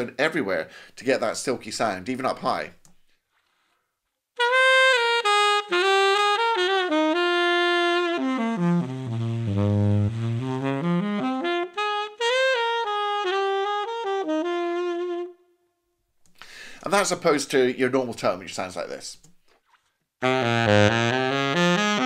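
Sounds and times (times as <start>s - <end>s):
tenor saxophone playing: 4.4s - 16.0s, 20.2s - 22.0s.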